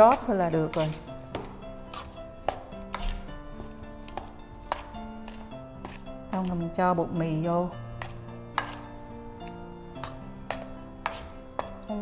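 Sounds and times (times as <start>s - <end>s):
metal spoon scraping steel bowl: 0.0s - 3.4s, 4.1s - 6.7s, 7.9s - 12.0s
soft background music: 0.0s - 12.0s.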